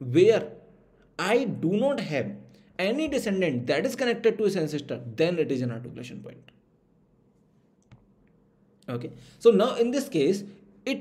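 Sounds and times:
man speaking: 0:00.0 - 0:00.6, 0:08.8 - 0:11.0.

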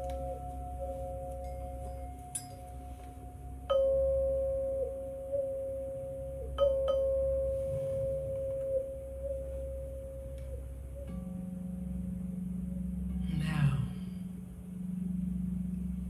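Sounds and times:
crystal singing bowls ringing: 0:00.0 - 0:16.0
low steady tone: 0:00.0 - 0:16.0.

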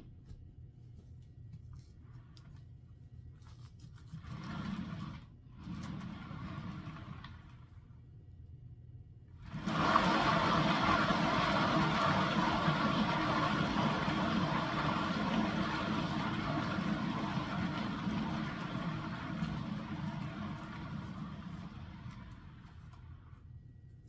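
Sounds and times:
turntable whirring rumble: 0:09.3 - 0:23.6.

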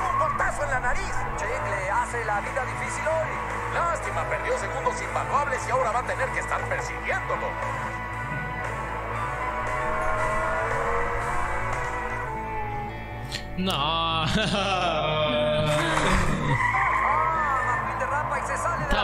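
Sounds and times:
cartoon race car engines revving: 0:00.0 - 0:13.0, 0:14.9 - 0:19.0
tires skidding: 0:00.0 - 0:13.3, 0:16.0 - 0:19.0
background music with steady beat: 0:00.0 - 0:19.0.

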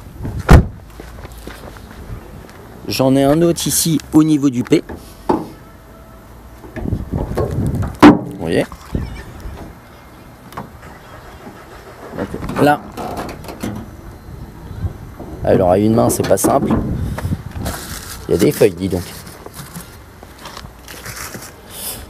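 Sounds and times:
low rumbling handling noise: 0:06.4 - 0:21.6.

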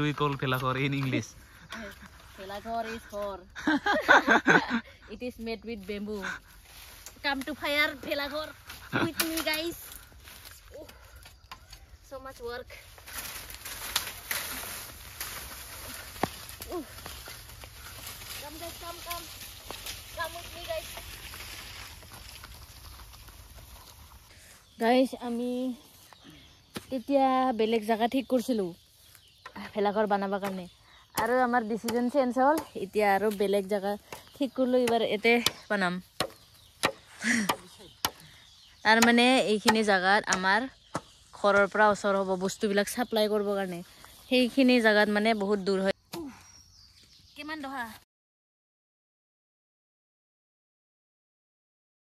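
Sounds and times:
footsteps: 0:05.8 - 0:24.4
bamboo pole scraping over leaves: 0:12.9 - 0:24.3.

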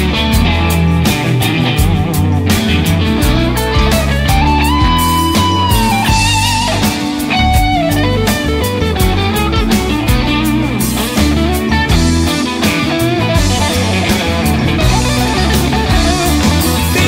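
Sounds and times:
bass: 0:00.0 - 0:17.0
drums: 0:00.0 - 0:17.0
electric guitar: 0:00.0 - 0:17.0.

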